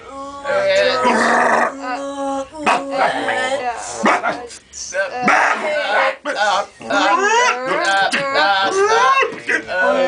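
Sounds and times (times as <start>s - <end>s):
voices yelping and calling: 0.4s - 10.0s.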